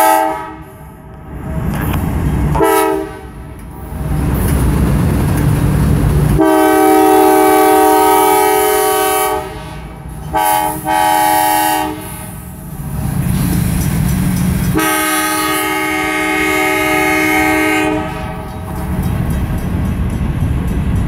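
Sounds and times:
train air horn blasts: 0.0 - 1.0, 2.5 - 3.4, 6.4 - 12.5, 14.7 - 18.5
locomotive engine and wheels rumble: 0.0 - 21.0.

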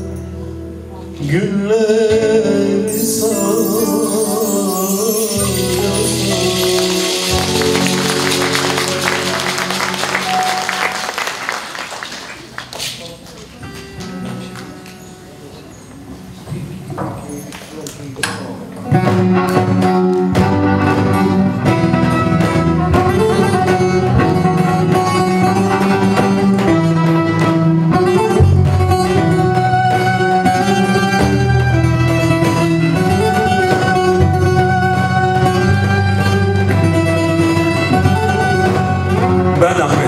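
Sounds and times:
violin: 2.1 - 11.6, 16.9 - 40.0
plucked saz: 2.2 - 11.1, 18.8 - 40.0.

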